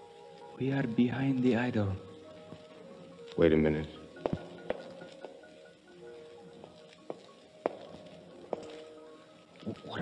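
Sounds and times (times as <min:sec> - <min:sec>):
faint sustained music: 0:00.0 - 0:10.0.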